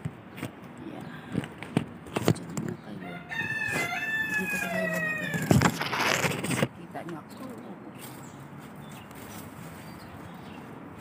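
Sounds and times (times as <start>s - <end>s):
rooster crowing: 3.0s - 5.6s.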